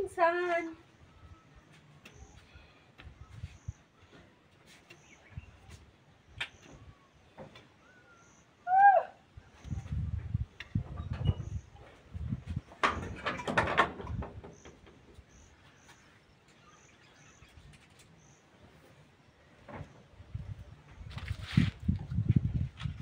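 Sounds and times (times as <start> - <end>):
bird chirps: 14.5 - 18.9.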